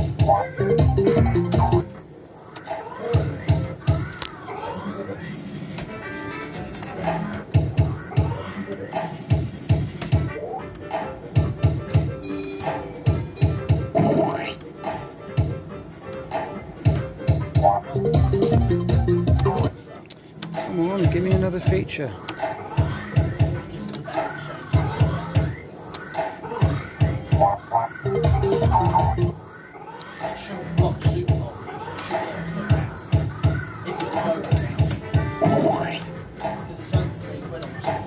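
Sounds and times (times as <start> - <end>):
slot machine electronic music: 0.0 - 1.9, 12.0 - 14.7, 17.3 - 19.8, 27.3 - 29.4, 35.2 - 36.4.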